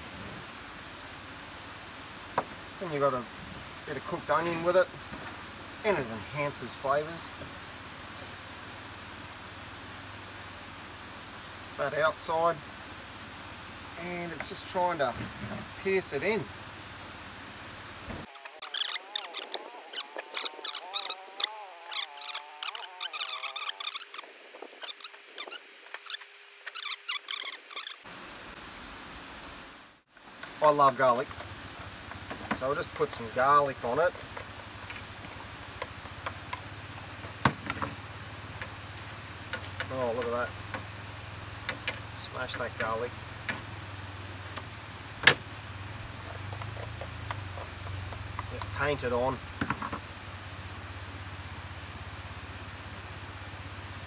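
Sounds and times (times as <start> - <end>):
rapid squeaky clicks: 18.4 - 28.0
wavering high-pitched tone: 18.6 - 28.0.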